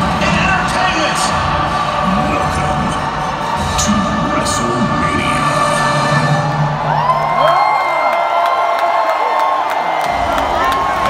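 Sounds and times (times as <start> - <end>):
music over public address: 0.0 - 7.9
crowd cheering and whooping: 6.1 - 11.0.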